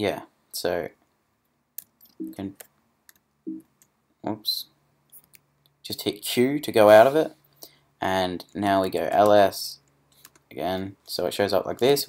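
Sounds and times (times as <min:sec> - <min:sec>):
person speaking: 0:01.8 - 0:02.8, 0:03.5 - 0:12.0.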